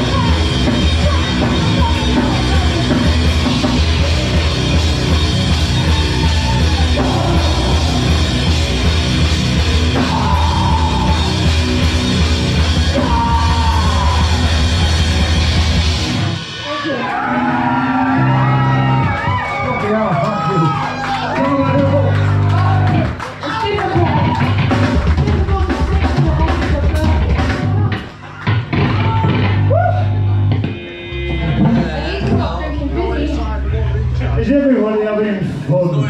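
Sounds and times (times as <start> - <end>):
punk rock band playing: 0.0 - 35.4
bass guitar: 0.0 - 36.0
distorted guitar: 0.0 - 36.0
drums: 0.0 - 36.0.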